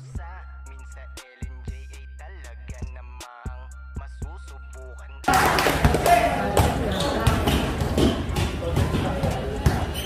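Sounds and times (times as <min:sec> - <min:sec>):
crowd chatter: 0:05.3 - 0:10.0
basketball bouncing on concrete: 0:05.6 - 0:10.0.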